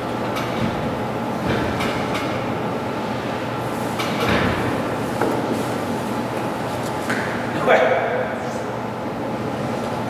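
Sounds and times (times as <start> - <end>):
room hum and hiss: 0.0 - 10.0.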